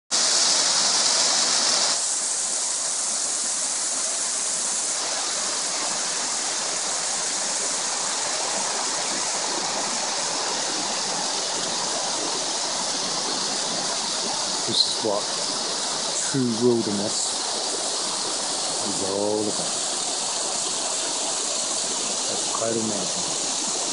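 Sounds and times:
waterfall rushing: 0.2s - 23.9s.

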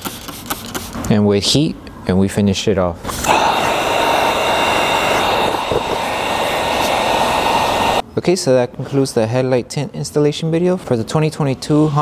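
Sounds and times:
heat gun blowing air: 3.1s - 8.0s.

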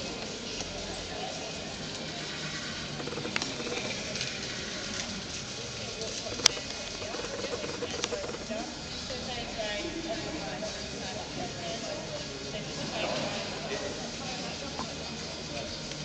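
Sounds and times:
people talking indistinctly: 0.0s - 16.0s.

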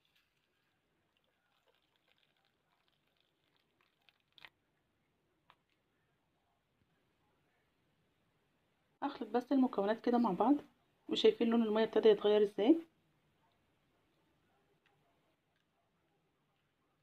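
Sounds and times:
water pouring onto tea leaves: 0.0s - 4.5s.

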